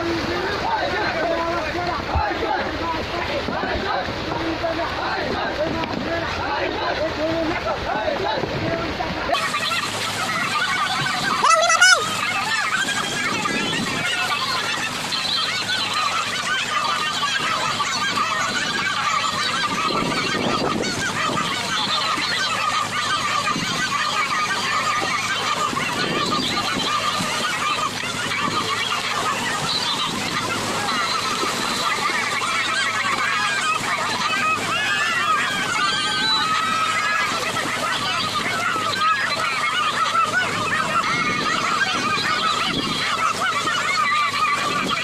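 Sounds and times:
many wavering calls: 0:00.0 - 0:45.0
water churning and splashing: 0:00.0 - 0:45.0.

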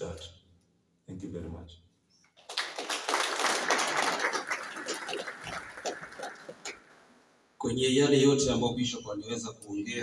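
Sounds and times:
audience applauding: 0:02.4 - 0:07.0.

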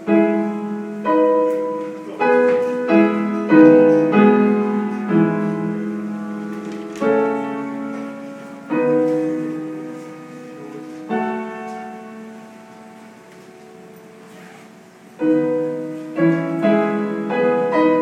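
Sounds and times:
piano chords: 0:00.0 - 0:18.0.

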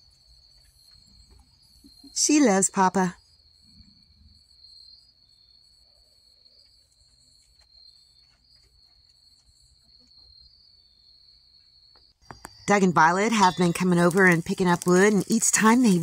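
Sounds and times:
crickets trilling: 0:00.0 - 0:16.0
faint ticks and rustles: 0:06.5 - 0:10.4, 0:13.3 - 0:16.0.

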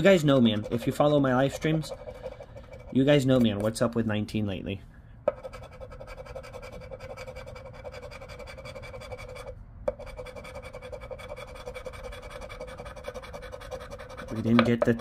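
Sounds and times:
scraping scratch-off ticket: 0:00.0 - 0:03.8.

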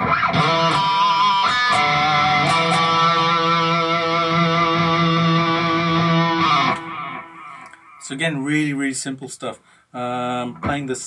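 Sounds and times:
electric guitar lead lick: 0:00.0 - 0:08.0.

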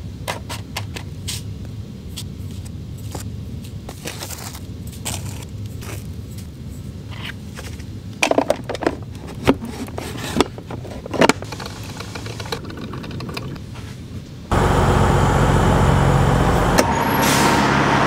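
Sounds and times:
plastic parts clicking and clattering: 0:07.1 - 0:13.6
truck engine running: 0:14.5 - 0:18.0.

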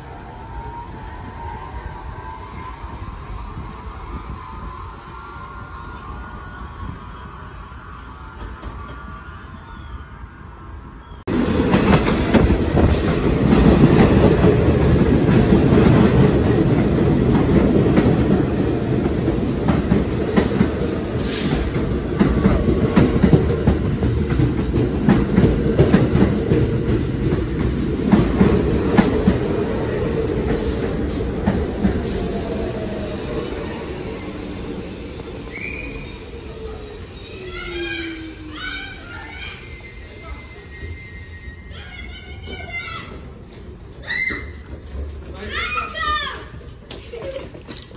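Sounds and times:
subway train wheels clacking: 0:11.2 - 0:47.9
short high squeals: 0:35.5 - 0:42.9.

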